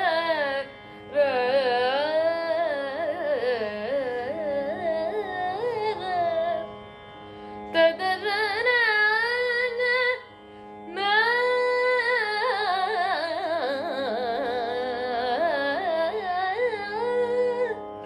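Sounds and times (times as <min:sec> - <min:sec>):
woman singing: 0:00.0 - 0:06.7, 0:07.7 - 0:10.3, 0:10.9 - 0:17.8
tanpura drone: 0:00.0 - 0:18.0.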